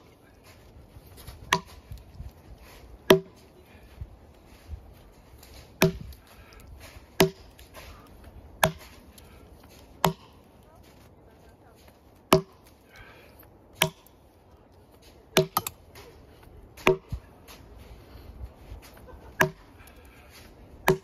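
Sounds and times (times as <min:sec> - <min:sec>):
axe chopping into log: 0:01.5 - 0:01.8, 0:03.0 - 0:03.4, 0:05.8 - 0:06.2, 0:07.2 - 0:07.8, 0:08.6 - 0:09.0, 0:10.0 - 0:10.4, 0:12.3 - 0:12.7, 0:13.8 - 0:14.1, 0:15.4 - 0:15.8, 0:16.8 - 0:17.2, 0:19.4 - 0:19.6.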